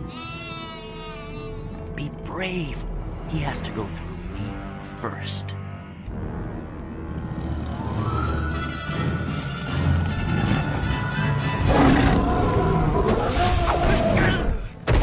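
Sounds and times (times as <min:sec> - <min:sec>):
dramatic background music: 0:00.0 - 0:15.0.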